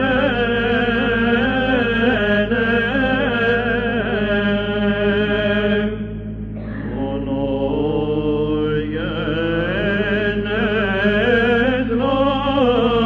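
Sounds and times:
held vocal drone: 0:00.0 - 0:13.0
solo cantor chanting: 0:06.6 - 0:13.0.

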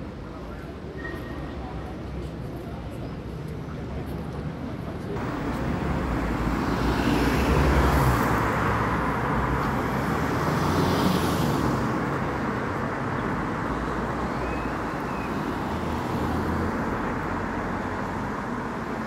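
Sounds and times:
road traffic passing: 0:04.5 - 0:19.0.

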